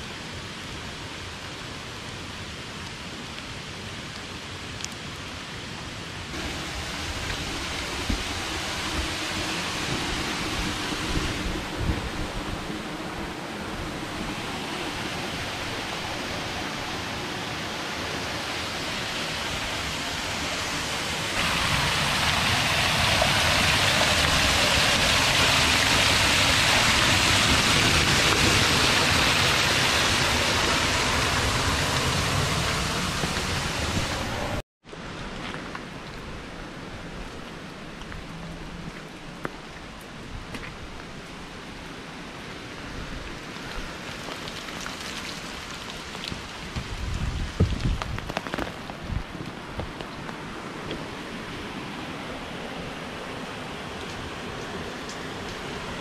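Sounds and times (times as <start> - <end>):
rain: 0.0 - 56.0
running water: 6.3 - 34.6, 37.3 - 56.0.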